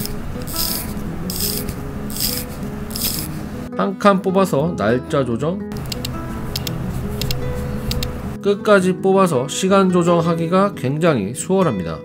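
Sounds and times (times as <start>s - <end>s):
watch crown winding ratchet: 0.0s - 3.4s.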